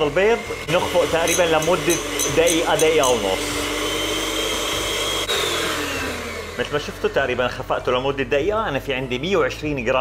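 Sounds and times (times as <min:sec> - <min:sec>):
electric hand mixer running: 0:00.0 - 0:09.8.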